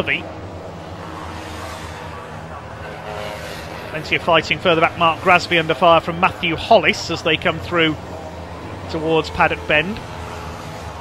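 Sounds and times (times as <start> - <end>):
race car engines passing: 0.0 - 11.0.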